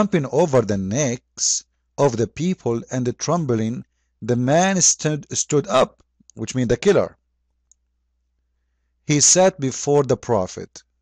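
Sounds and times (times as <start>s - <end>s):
man's voice: 0.0s - 7.1s, 9.1s - 10.8s.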